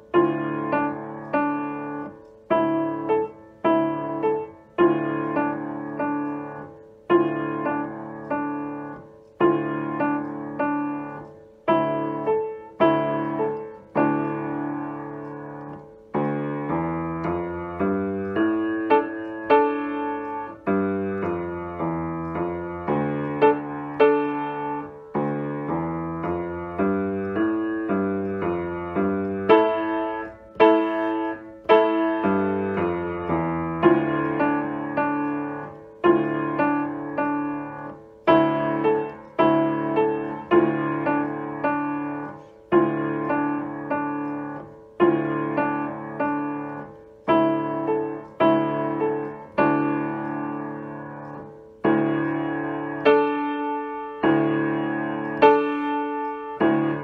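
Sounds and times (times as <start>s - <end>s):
upright piano piece: 0.0s - 57.0s.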